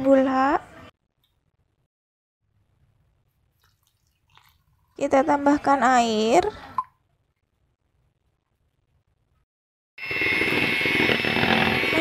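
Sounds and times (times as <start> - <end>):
electric hand mixer whining: 10.0 - 12.0.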